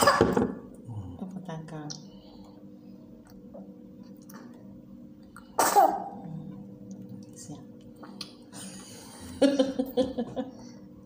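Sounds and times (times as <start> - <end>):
person sneezing: 5.6 - 6.1
woman laughing: 8.6 - 10.7.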